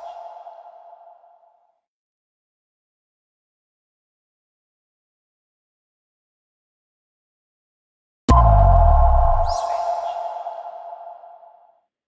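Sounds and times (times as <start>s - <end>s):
deep bass boom hit: 8.3s - 9.6s
two-note ringing tone: 8.3s - 11.2s.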